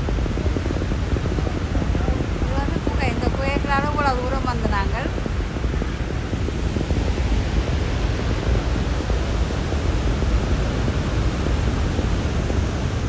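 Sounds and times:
waterfall rushing and rumbling: 0.0 - 13.0.

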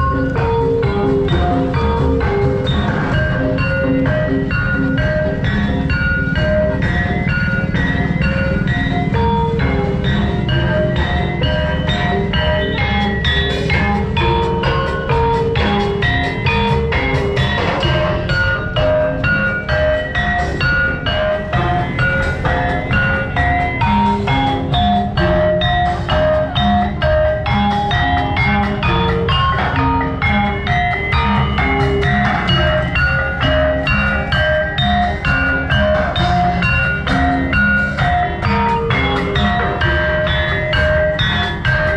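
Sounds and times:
gamelan music: 0.0 - 41.9.

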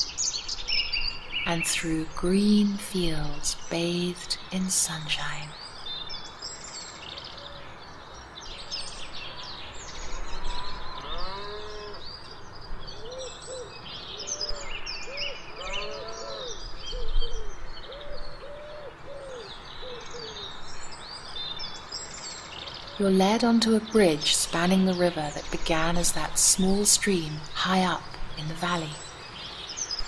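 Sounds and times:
birds singing and chirping: 0.0 - 30.0.

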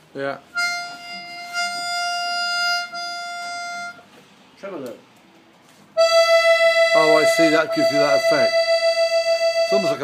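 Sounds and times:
accordion holding a note: 0.6 - 4.1, 6.0 - 10.0.

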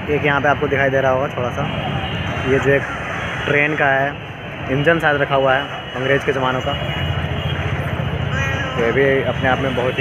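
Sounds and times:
street traffic rumble: 0.0 - 10.0
man speaking: 2.4 - 6.9, 8.4 - 10.0.

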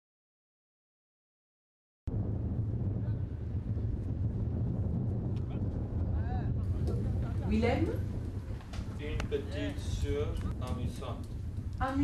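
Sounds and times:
wind buffeting microphone: 2.1 - 12.0.

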